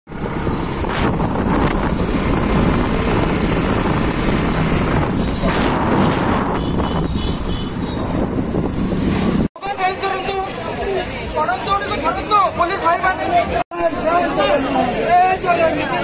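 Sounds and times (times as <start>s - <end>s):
wind buffeting microphone: 0.1s - 9.5s
vehicle noise: 0.1s - 16.0s.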